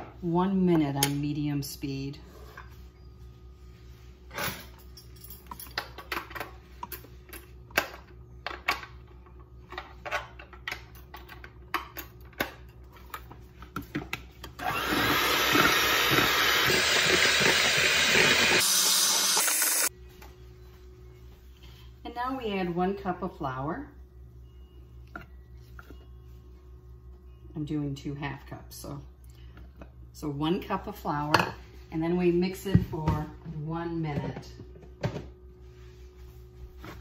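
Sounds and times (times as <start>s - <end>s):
electric hand mixer beating batter: 14.6s - 19.9s.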